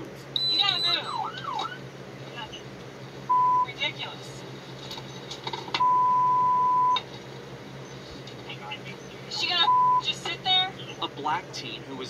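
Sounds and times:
censor bleeps: 0.4s - 1.7s, 3.3s - 3.8s, 5.8s - 7.0s, 9.6s - 10.1s.

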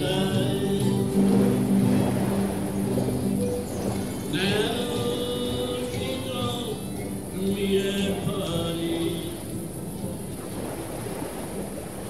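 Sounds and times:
fiddles: 0.0s - 8.1s
acoustic guitars: 0.0s - 11.1s.

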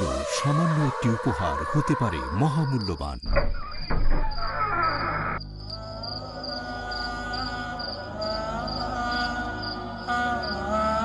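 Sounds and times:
cricket chirping: 0.2s - 11.0s
background music with low drone: 4.6s - 11.0s.

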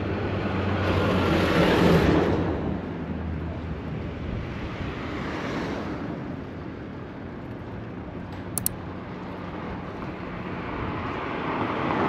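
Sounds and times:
street traffic rush: 0.0s - 12.0s.

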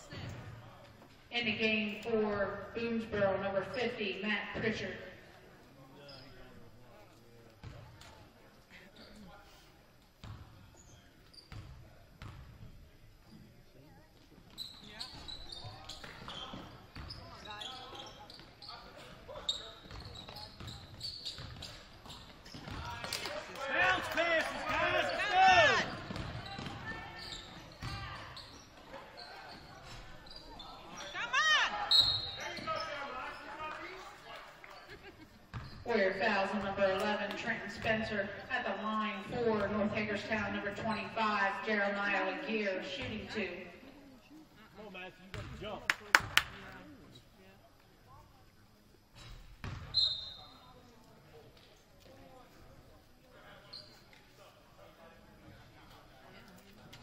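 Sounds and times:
sneakers squeaking on court: 6.0s - 6.6s, 10.2s - 12.6s, 14.4s - 23.0s, 25.6s - 33.6s, 34.8s - 38.1s, 45.3s - 45.6s, 49.2s - 50.6s.

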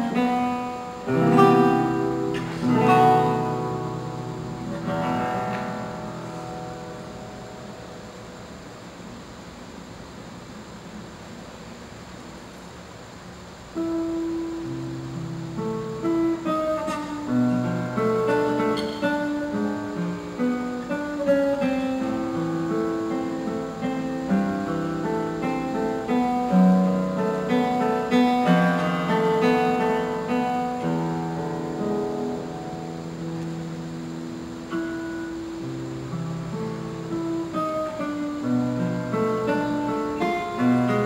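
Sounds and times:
classical guitar playing: 0.0s - 11.1s, 13.6s - 41.0s.

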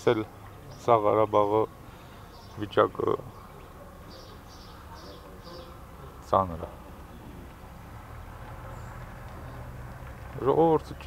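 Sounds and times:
man speaking: 0.0s - 1.8s, 2.6s - 3.4s, 5.5s - 7.0s.

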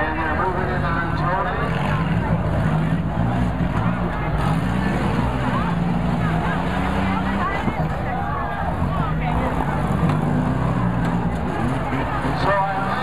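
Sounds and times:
car engines revving: 0.0s - 13.0s
crowd voices: 0.0s - 13.0s.

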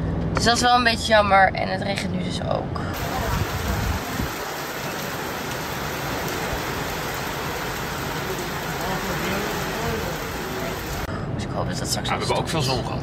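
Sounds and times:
heavy rain on corrugated roof: 3.0s - 11.1s.

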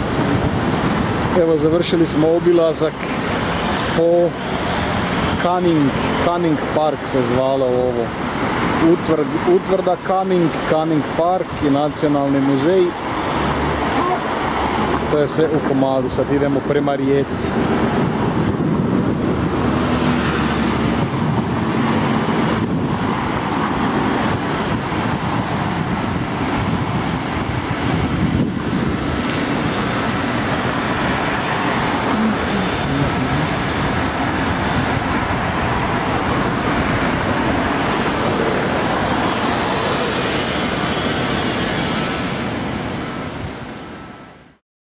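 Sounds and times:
road traffic passing: 0.0s - 44.6s
coach engine close by: 17.5s - 43.9s.

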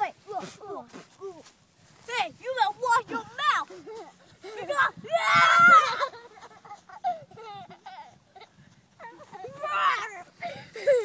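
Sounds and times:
child screaming: 4.7s - 6.1s.

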